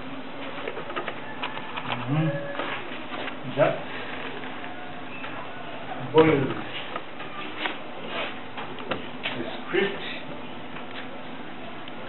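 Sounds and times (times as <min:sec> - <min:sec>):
scattered clicks and rustles: 0:00.4 - 0:03.4.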